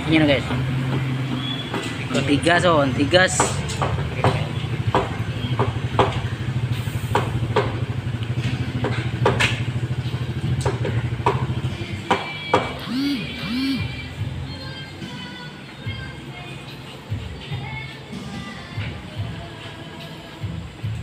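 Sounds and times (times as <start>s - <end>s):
motorcycle engine idling: 2.0s - 14.4s.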